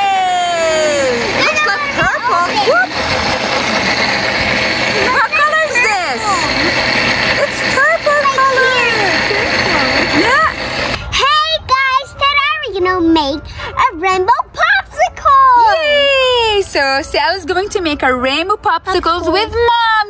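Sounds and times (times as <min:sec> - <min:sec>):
blender running: 0:00.0 - 0:11.1.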